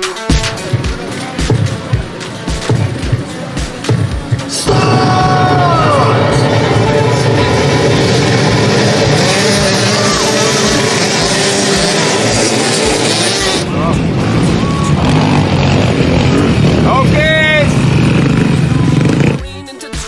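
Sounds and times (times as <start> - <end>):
motorcycle engines running together: 0.0 - 19.7.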